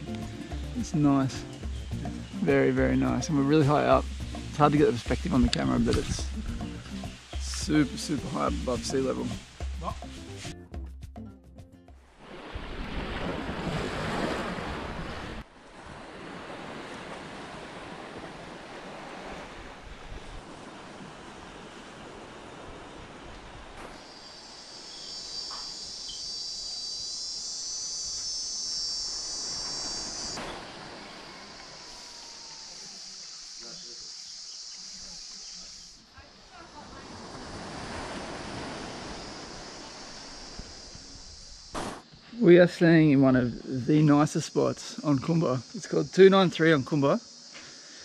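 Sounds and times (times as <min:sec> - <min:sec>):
high trill of insects: 0:00.0 - 0:10.5, 0:20.9 - 0:48.0.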